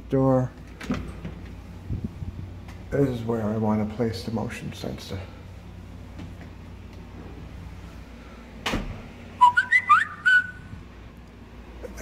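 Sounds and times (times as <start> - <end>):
high whistle-like chirps: 9.4 - 10.7.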